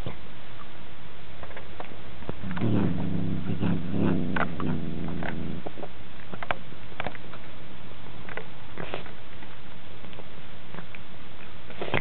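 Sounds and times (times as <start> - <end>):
cat growling: 2.4 - 5.7.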